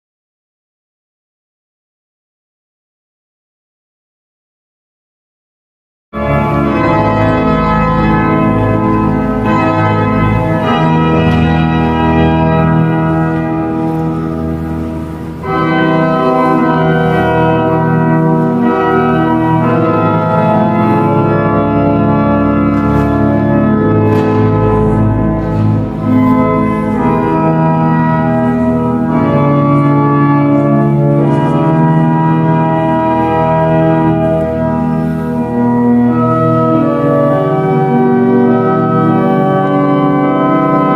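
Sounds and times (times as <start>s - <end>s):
organ playing sustained chords: 6.2s - 40.9s.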